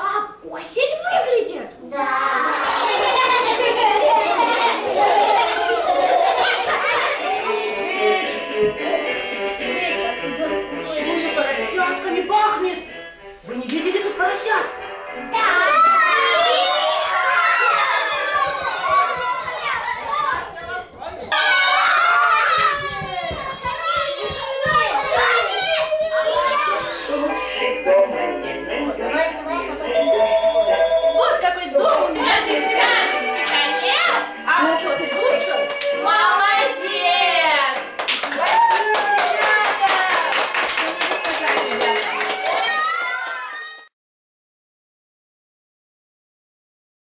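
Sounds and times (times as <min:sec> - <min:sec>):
young children chattering: 0:00.0 - 0:12.3, 0:15.3 - 0:21.4, 0:22.1 - 0:27.8, 0:28.7 - 0:30.4
children clapping: 0:17.2 - 0:25.8, 0:31.8 - 0:34.8, 0:37.6 - 0:43.9.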